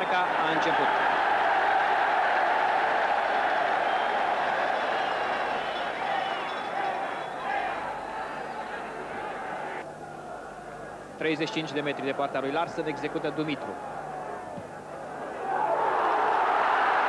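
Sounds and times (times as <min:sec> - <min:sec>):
stadium crowd noise: 0:00.0 - 0:17.0.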